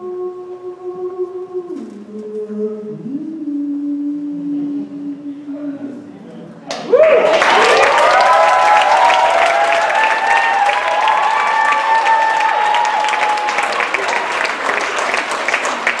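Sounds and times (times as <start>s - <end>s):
audience clapping: 6.7s - 16.0s
people cheering: 6.7s - 16.0s.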